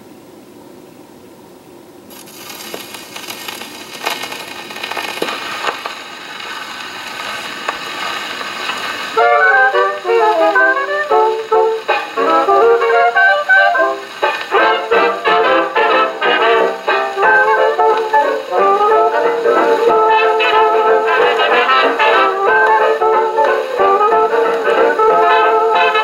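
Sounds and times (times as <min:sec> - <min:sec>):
record needle hiss and crackle: 0:00.0 - 0:26.0
brass dance band music: 0:09.2 - 0:26.0.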